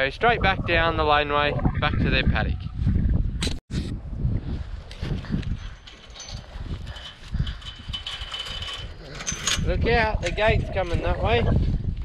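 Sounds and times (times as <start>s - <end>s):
chain and metal gate rattling: 5.1s - 11.1s.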